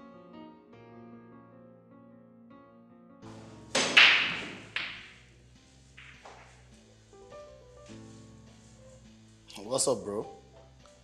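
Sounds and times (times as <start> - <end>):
pool balls cracking: 3.4 - 5.3, 5.9 - 6.8.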